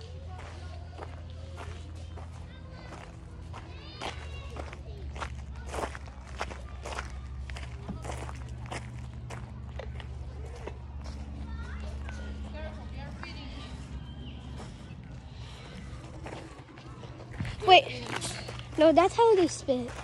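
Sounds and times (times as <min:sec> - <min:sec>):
steady low hum: 0:00.0 - 0:20.0
footsteps on gravel and leaves: 0:00.2 - 0:20.0.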